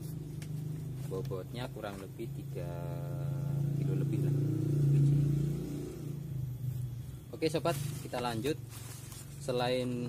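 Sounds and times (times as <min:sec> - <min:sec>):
vehicle engine passing by: 0:02.7 - 0:08.8.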